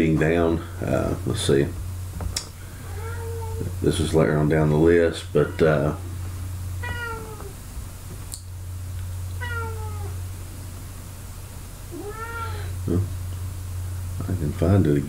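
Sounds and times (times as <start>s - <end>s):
steady low hum: 0.0s - 15.0s
cat meowing: 2.8s - 3.7s, 6.8s - 7.6s, 9.4s - 10.2s, 11.9s - 12.8s.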